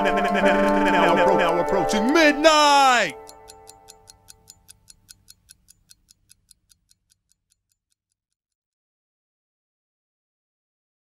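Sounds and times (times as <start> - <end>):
held music chord: 0.0 - 3.9
fast clock ticking: 0.0 - 8.2.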